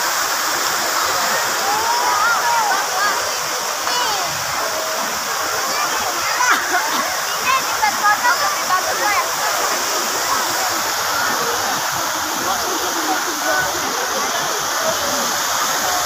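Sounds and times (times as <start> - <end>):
crowd talking: 0.0 - 16.0
fountain water rushing: 0.0 - 16.0.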